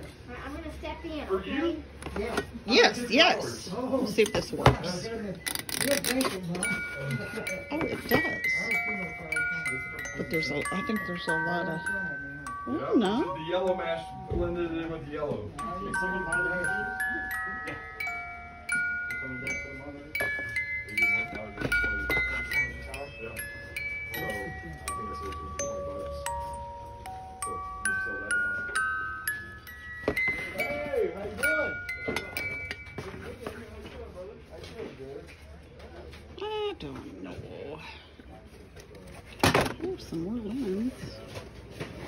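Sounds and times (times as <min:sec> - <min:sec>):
faint voices: 0:01.8 - 0:42.0
music box tune: 0:06.0 - 0:33.5.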